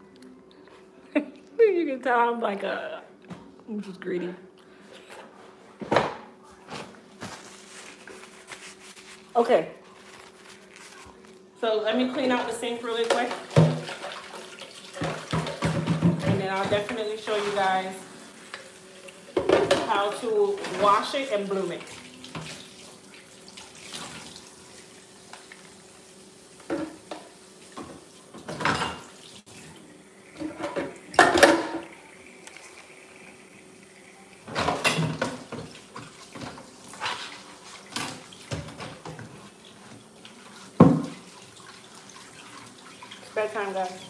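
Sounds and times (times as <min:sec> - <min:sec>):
dishes clattering in sink: 0:05.2 - 0:06.8, 0:12.1 - 0:22.7, 0:26.6 - 0:29.4, 0:30.3 - 0:32.8, 0:34.4 - 0:44.0
running and splashing water: 0:12.2 - 0:44.0.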